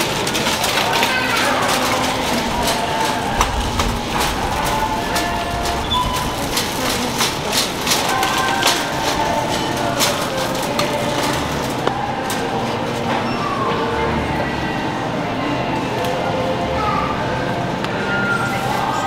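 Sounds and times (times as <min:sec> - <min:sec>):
background voices: 0:00.0 - 0:19.0
shopping cart rattling: 0:00.0 - 0:19.0.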